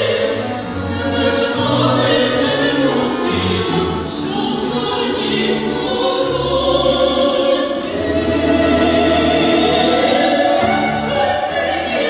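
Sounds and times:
folk instrument orchestra: 0:00.0 - 0:12.0
women singing folk song duet: 0:00.0 - 0:12.0.

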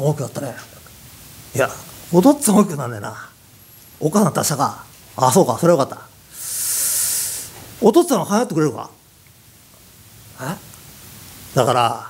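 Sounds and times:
person hissing breath: 0:06.3 - 0:07.7.

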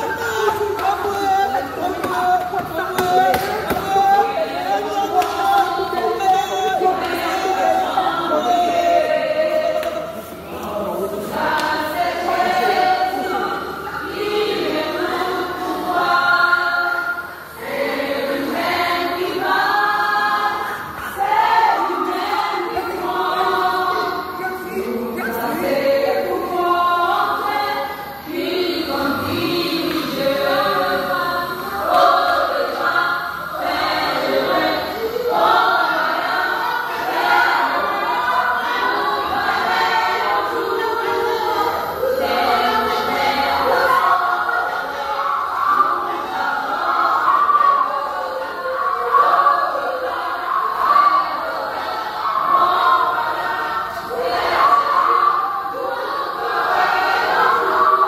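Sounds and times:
congregation singing: 0:00.0 - 0:58.0.

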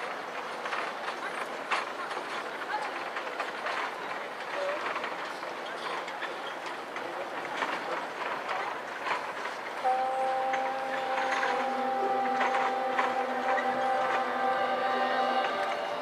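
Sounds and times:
marching band long held note: 0:09.8 - 0:16.0.

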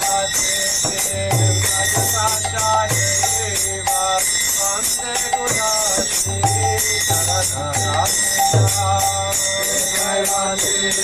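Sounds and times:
hand cymbals ringing: 0:00.0 - 0:11.0
handbell ringing: 0:00.0 - 0:11.0
group chanting in unison: 0:09.5 - 0:11.0.

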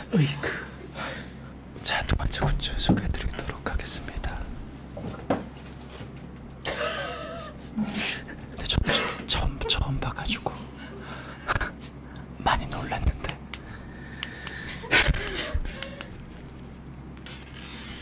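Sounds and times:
men whispering: 0:01.8 - 0:04.6, 0:07.8 - 0:10.8, 0:11.5 - 0:13.4.

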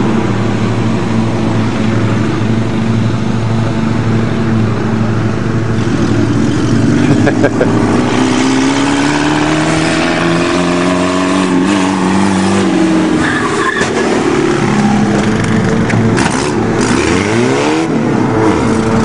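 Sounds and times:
car engine revving: 0:00.0 - 0:19.0.

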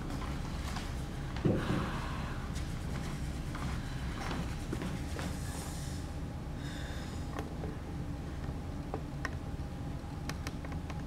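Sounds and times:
low hum of room noise: 0:00.0 - 0:11.0.

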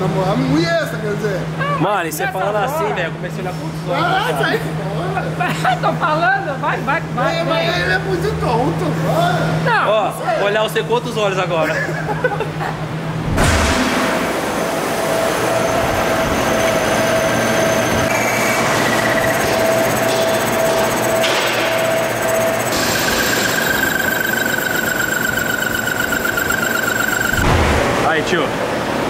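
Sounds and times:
metal lathe machining: 0:16.4 - 0:27.4
high wavering cutting tone: 0:18.1 - 0:27.4.

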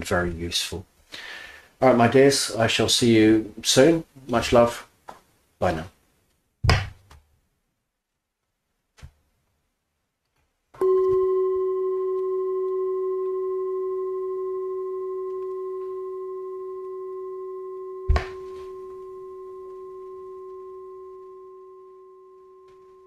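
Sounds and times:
bell-like chime: 0:10.8 - 0:23.0.

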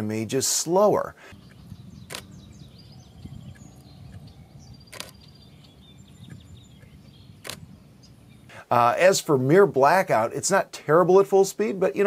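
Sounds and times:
camera shutter firing: 0:02.1 - 0:02.3, 0:04.9 - 0:05.2, 0:07.4 - 0:07.7.

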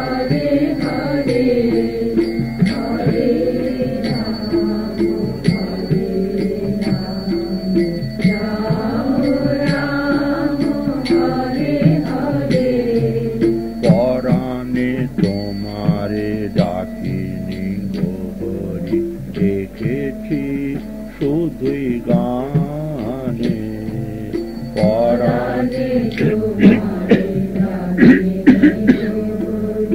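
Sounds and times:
devotional music: 0:00.0 - 0:29.9
steady percussive beat: 0:00.0 - 0:29.9.

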